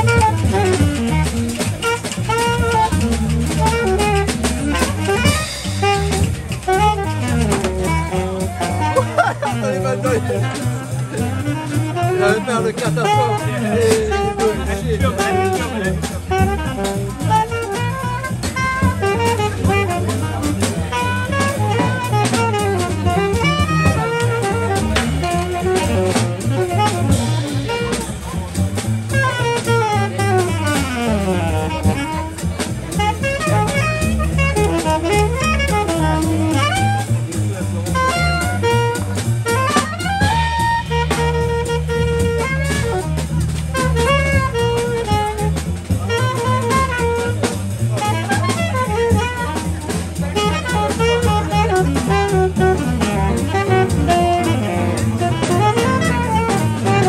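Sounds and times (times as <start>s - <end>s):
drum kit: 0.0s - 57.0s
saxophone lead line: 0.0s - 57.0s
upright bass: 0.0s - 57.0s
piano: 51.6s - 57.0s.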